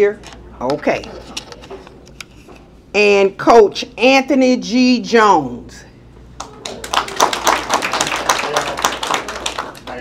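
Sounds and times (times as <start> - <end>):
people applauding: 6.4 - 10.0.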